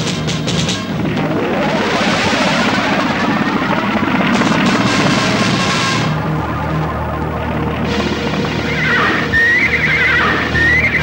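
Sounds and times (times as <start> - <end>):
orchestral film music: 3.9 - 11.0
horse whinnying: 8.6 - 11.0.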